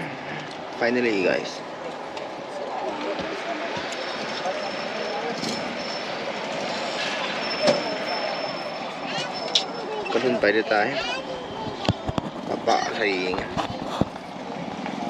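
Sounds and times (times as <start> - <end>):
road and engine noise: 0.0 - 15.0.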